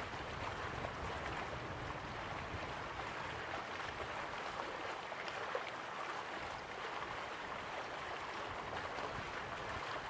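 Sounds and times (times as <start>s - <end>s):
stream water flowing: 0.0s - 10.0s.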